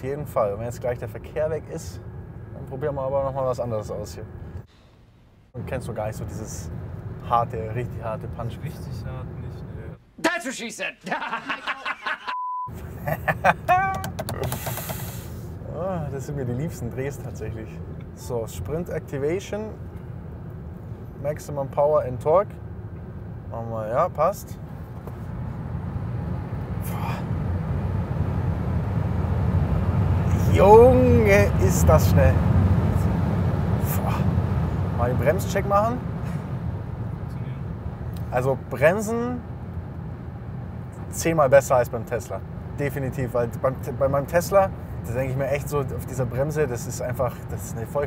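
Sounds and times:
car cabin road noise: 0.0s - 10.4s, 11.6s - 48.0s
men laughing: 11.0s - 14.8s.

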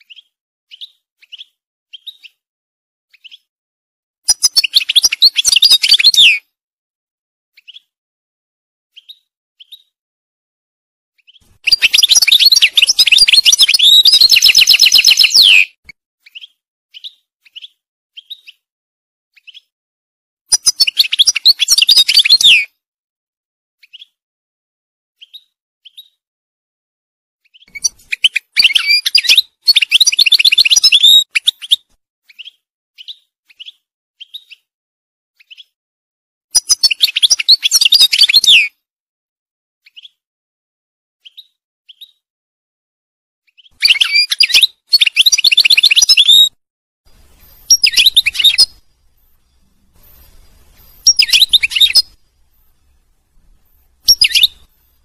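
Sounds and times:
finch twittering song: 0.0s - 2.4s, 3.1s - 3.5s, 4.3s - 6.4s, 7.6s - 7.9s, 8.9s - 10.0s, 11.2s - 18.6s, 19.4s - 19.7s, 20.5s - 22.7s, 25.2s - 26.2s, 27.4s - 34.7s, 35.4s - 35.8s, 36.6s - 38.7s, 43.5s - 55.0s.

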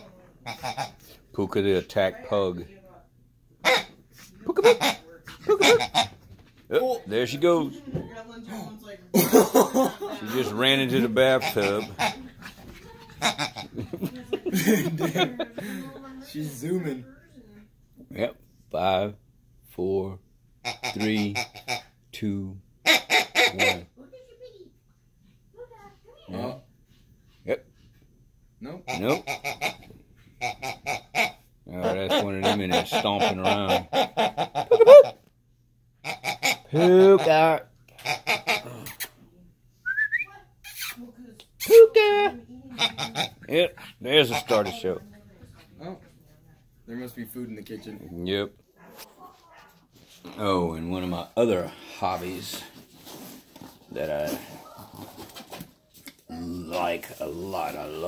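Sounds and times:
dog high squeal: 34.7s - 35.2s.

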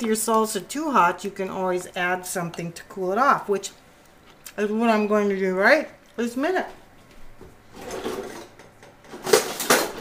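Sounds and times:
metal kitchen utensils clattering: 7.7s - 10.0s.

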